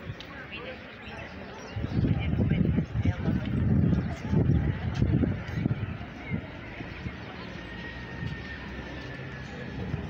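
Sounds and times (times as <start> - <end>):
wind buffeting microphone: 0.0 - 0.5, 1.3 - 10.0
faint voices: 0.0 - 10.0.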